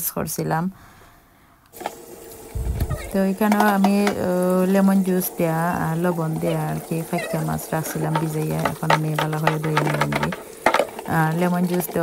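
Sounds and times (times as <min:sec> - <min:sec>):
kitchen tap running: 0:01.7 - 0:12.0
water splashing in a colander: 0:01.8 - 0:12.0.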